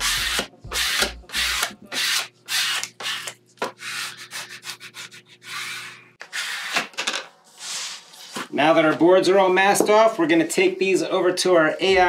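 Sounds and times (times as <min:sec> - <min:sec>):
tape rubbing strokes: 0:00.0 - 0:06.9, 0:07.5 - 0:08.5.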